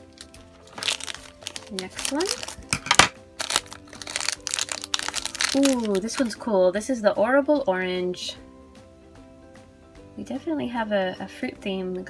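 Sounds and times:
foil bag crinkling: 0:00.0 - 0:06.4
soft background music: 0:00.0 - 0:12.0.

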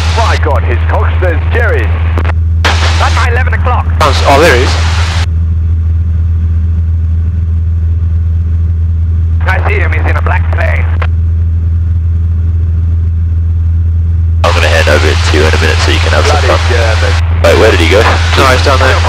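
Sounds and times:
aircraft engine and propeller drone: 0:00.0 - 0:19.0
person speaking: 0:02.9 - 0:04.9, 0:14.4 - 0:19.0.

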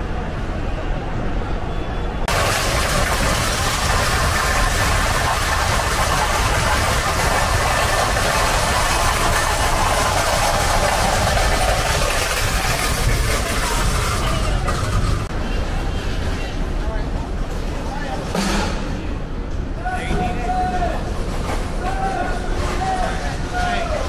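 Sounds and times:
loud steady engine: 0:02.2 - 0:16.4
strong hiss: 0:02.3 - 0:15.3.

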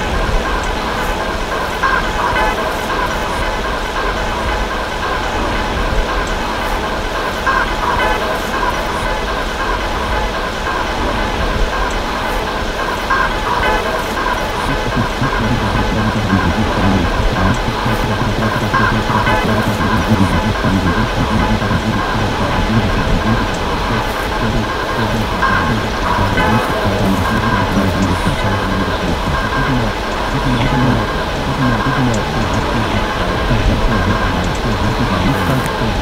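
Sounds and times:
noisy low rumble: 0:00.0 - 0:36.0
synthesizer held tones: 0:13.1 - 0:36.0.

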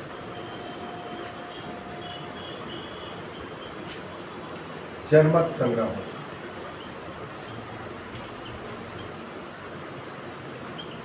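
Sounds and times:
steady background hiss: 0:00.0 - 0:11.0
marker squeaking on whiteboard: 0:02.2 - 0:04.0, 0:06.7 - 0:09.2, 0:10.8 - 0:11.0.

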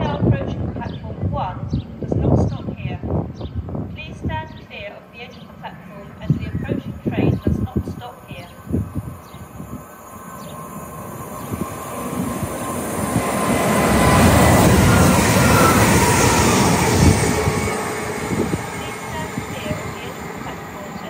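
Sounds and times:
train rumbling past: 0:01.7 - 0:21.0.

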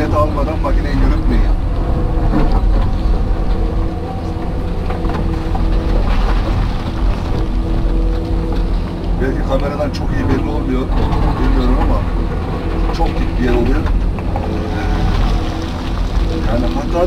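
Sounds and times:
excavator engine low rumble: 0:00.0 - 0:17.0
hydraulic whine: 0:00.0 - 0:17.0.

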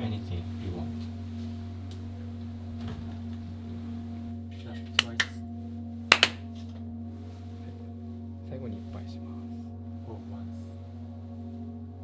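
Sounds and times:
steady low hum: 0:00.0 - 0:12.0
hand claps: 0:04.9 - 0:05.4, 0:06.1 - 0:06.6.

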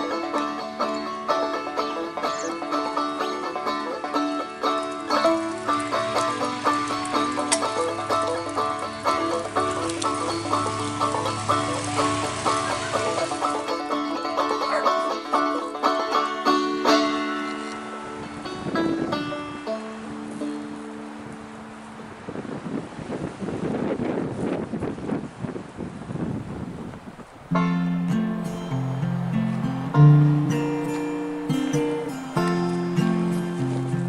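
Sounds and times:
banjo plucking: 0:00.0 - 0:21.8, 0:27.5 - 0:34.0
acoustic guitar tune: 0:00.0 - 0:22.1, 0:27.5 - 0:34.0.

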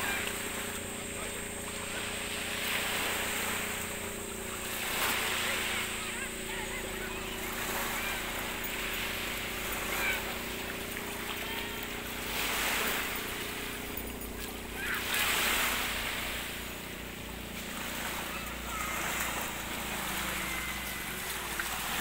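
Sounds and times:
small waves washing ashore: 0:00.0 - 0:22.0.

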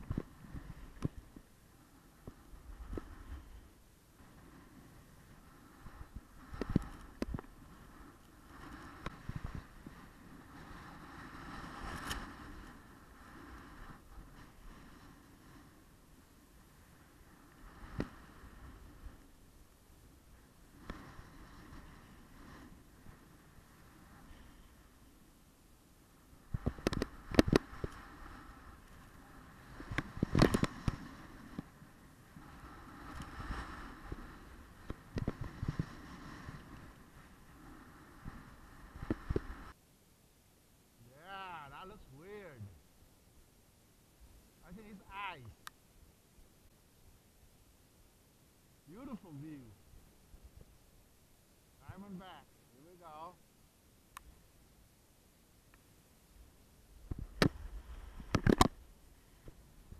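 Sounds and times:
skis scraping over snow: 0:00.1 - 0:19.3, 0:20.2 - 0:25.1, 0:26.2 - 0:39.8
skis scraping hard snow: 0:26.6 - 0:39.7.

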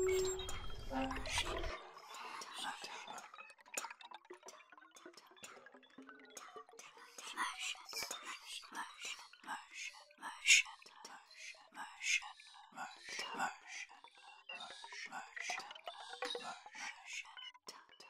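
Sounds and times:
whispered voice fragments: 0:00.0 - 0:03.3, 0:07.0 - 0:13.8.

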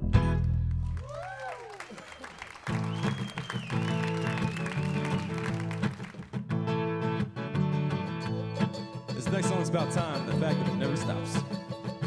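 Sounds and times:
acoustic string band playing: 0:07.8 - 0:12.0.

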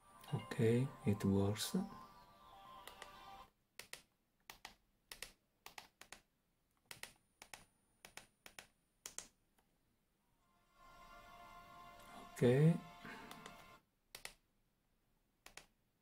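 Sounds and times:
faint tv soundtrack music: 0:00.0 - 0:03.5, 0:10.4 - 0:13.8.

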